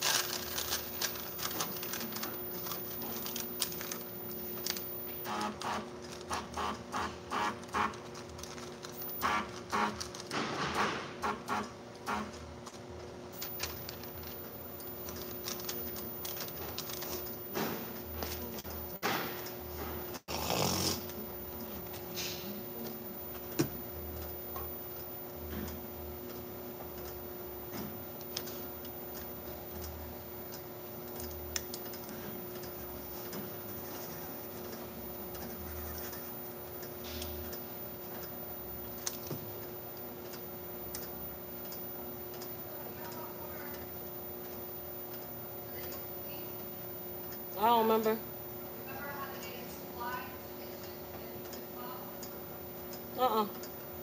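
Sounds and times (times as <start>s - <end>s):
labelling machine humming: 0.0s - 54.0s.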